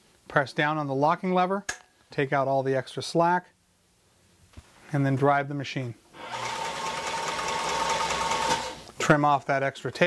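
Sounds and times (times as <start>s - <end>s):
sewing machine motor whirring: 6.2s - 8.9s.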